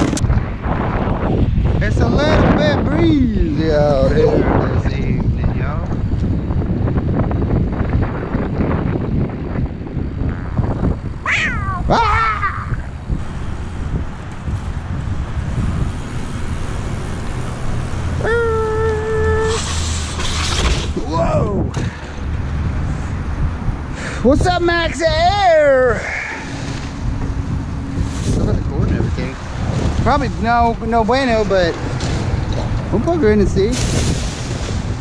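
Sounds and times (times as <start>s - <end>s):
wind buffeting microphone: 0.0s - 35.0s
steady tone: 10.0s - 14.2s
gliding call: 10.3s - 13.0s.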